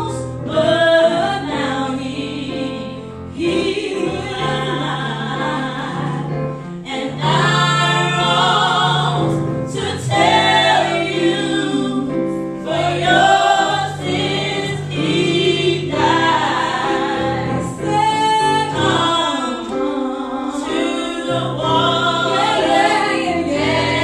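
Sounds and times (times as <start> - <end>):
piano accompaniment: 0.0 - 24.0
women singing gospel in harmony: 0.0 - 24.0.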